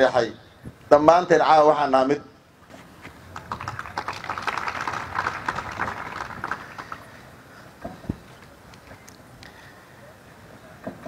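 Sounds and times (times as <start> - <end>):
audience clapping: 3.3 - 7.2.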